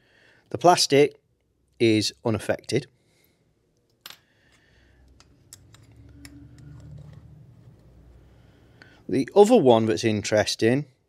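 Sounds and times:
light clicks and handling noise: 3.7s - 8.0s.

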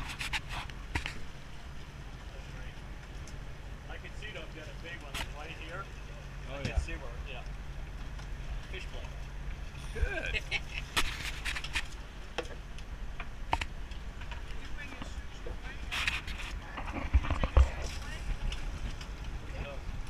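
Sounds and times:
boat engine rumble: 0.0s - 20.0s.

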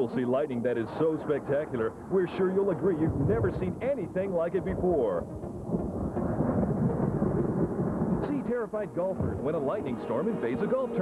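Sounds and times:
thunder rumbling: 0.0s - 11.0s.

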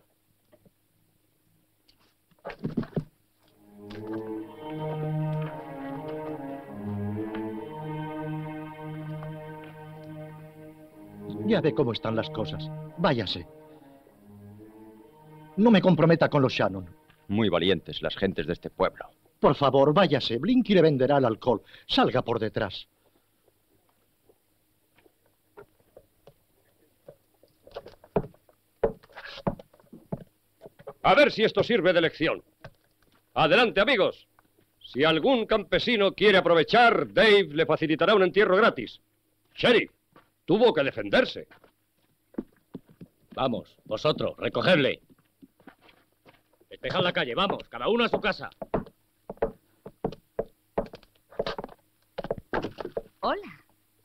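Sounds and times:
faint low hum: 0.0s - 54.0s
footsteps and scuffs: 45.1s - 53.1s.

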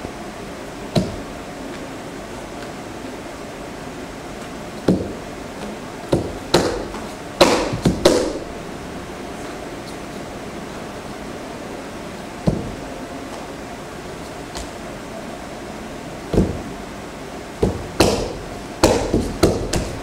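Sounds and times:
steady hiss: 0.0s - 20.0s
feet stamping on wooden floor: 6.1s - 8.4s, 16.3s - 16.7s, 17.6s - 20.0s.

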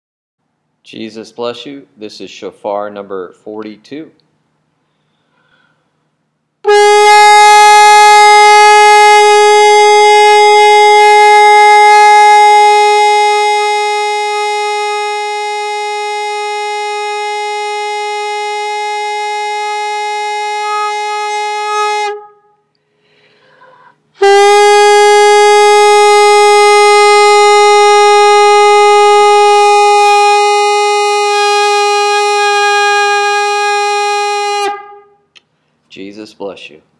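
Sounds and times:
shofar blasts: 6.6s - 22.7s, 24.2s - 35.3s.

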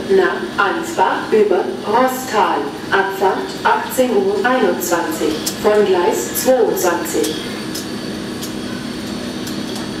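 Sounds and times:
train equipment humming: 0.0s - 10.0s.

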